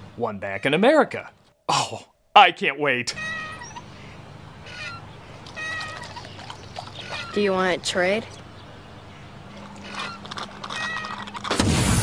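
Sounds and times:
short high squeaks: 3.1 - 3.9, 4.6 - 6.4, 9.6 - 11.7
swing chains squeaking: 3.1 - 4.0, 4.6 - 8.6, 9.4 - 11.5.

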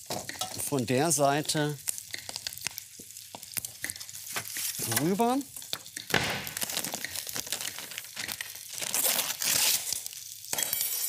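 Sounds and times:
fat crackling in a frying pan: 0.0 - 11.0
steady sizzle: 0.0 - 11.0.

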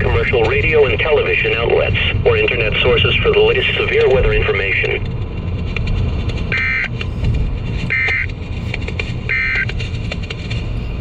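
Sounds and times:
weather radio electronic data buzzes: 0.0 - 5.1, 7.9 - 8.3, 9.3 - 9.7
low rumble of a car: 0.0 - 11.0.

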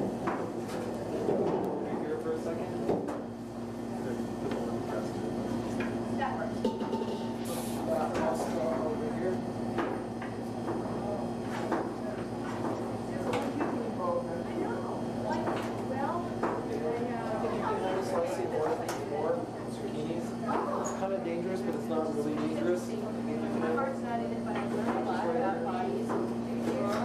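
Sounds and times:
steady low hum: 0.0 - 17.9.

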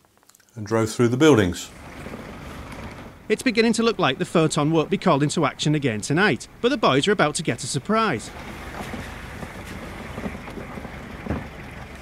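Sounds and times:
vehicle engine and road rumble: 1.6 - 12.0.

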